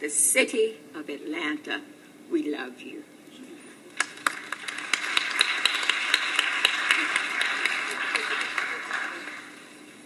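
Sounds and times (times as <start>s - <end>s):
audience applause: 4.0s - 9.8s.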